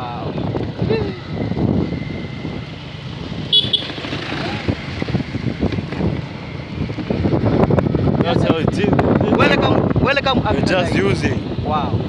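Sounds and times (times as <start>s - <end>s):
vehicle engine and road noise: 0.0s - 12.0s
voices: 8.2s - 12.0s.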